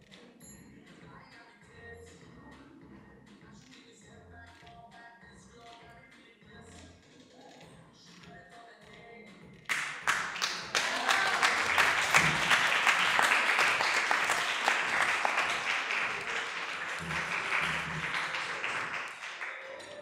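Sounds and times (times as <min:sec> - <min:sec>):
audience applauding: 0:09.7 - 0:20.0.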